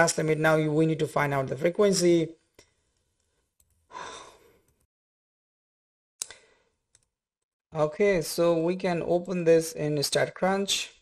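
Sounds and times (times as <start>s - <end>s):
person sighing: 3.9s - 4.6s.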